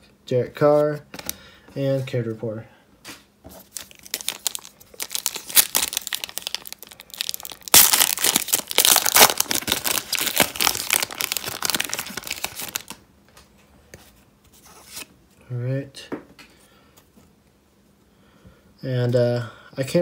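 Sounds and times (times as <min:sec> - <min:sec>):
foil wrapper crinkling and tearing: 0:03.6 - 0:13.0.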